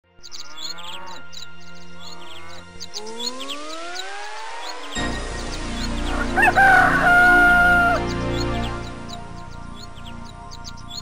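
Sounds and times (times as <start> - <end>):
rooster crowing: 6.1 - 8.2.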